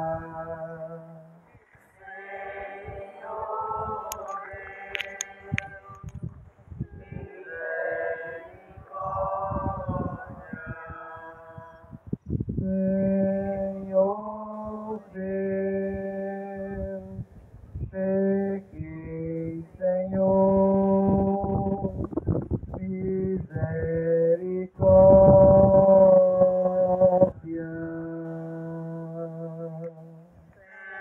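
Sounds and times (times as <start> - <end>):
voices singing a hymn: 0.0 - 31.0.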